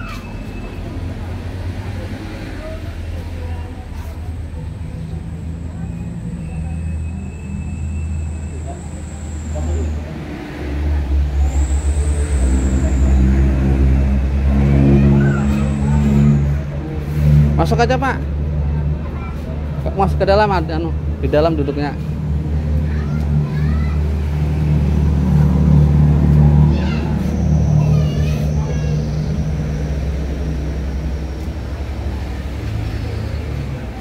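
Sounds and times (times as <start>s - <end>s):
vehicle engine rumbling: 0.0s - 34.0s.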